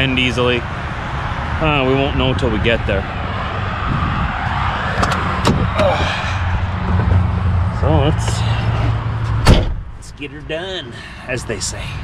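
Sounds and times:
cab door clicks and knocks: 9.4s - 9.9s.

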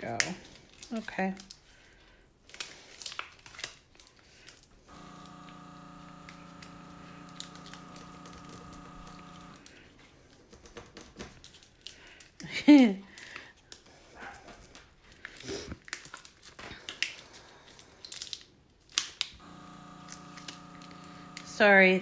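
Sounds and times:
vinyl tape crinkling: 2.4s - 12.4s, 13.1s - 21.6s
electrical hum: 4.8s - 9.9s, 19.4s - 22.0s.

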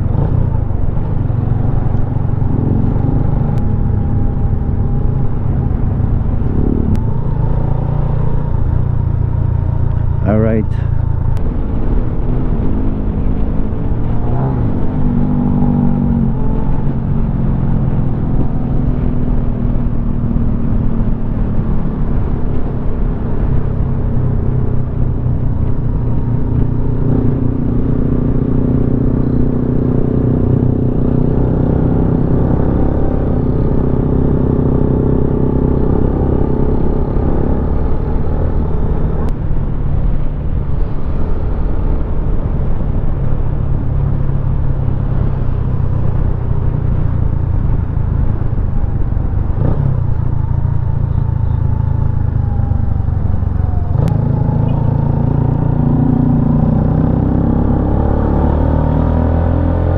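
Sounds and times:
motorcycle engine running: 45.7s - 57.8s.

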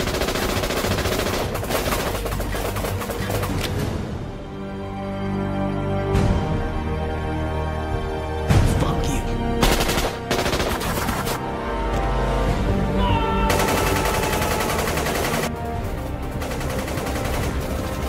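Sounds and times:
automatic gunfire: 0.0s - 3.6s, 9.6s - 11.4s, 13.5s - 15.5s
film music score: 0.0s - 18.0s.

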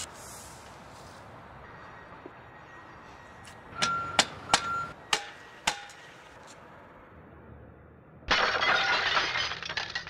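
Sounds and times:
clatter of small glass pieces: 8.3s - 10.0s
glass smashing: 8.3s - 10.0s.

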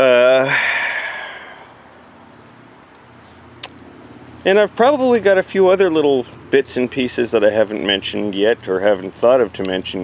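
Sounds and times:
breathy exhale: 0.4s - 1.9s.

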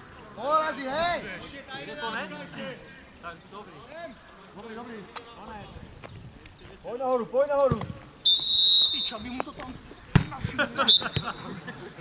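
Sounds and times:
short whistle blast: 8.2s - 9.3s
football kick thump: 10.1s - 11.3s.

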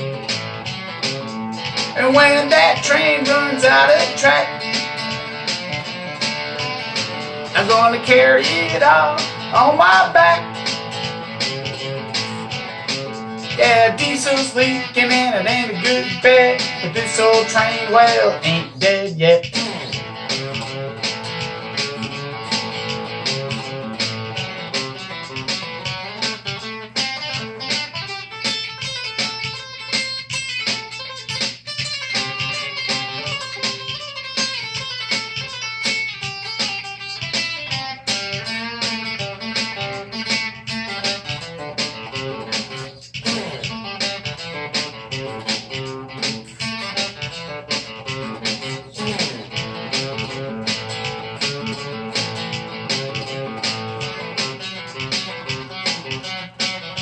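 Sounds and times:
electric guitar playing: 0.0s - 57.0s.

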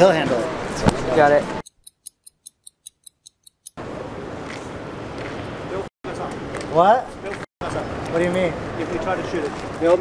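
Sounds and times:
steady outdoor noise: 0.0s - 10.0s.

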